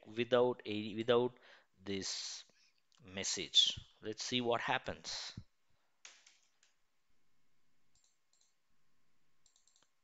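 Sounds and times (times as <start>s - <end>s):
computer mouse and keyboard clicks: 6.0s - 6.8s, 7.9s - 8.6s, 9.4s - 10.0s.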